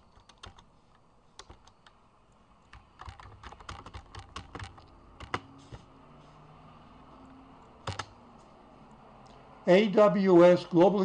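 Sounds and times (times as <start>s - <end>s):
typing on computer keyboard: 0.0s - 2.0s, 2.7s - 5.5s, 7.8s - 8.1s.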